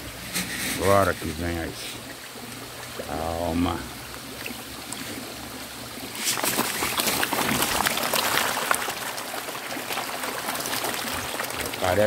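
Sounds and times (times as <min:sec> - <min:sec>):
water trickling into fish tank: 0:00.0 - 0:12.0
fish splashing at surface: 0:04.2 - 0:12.0.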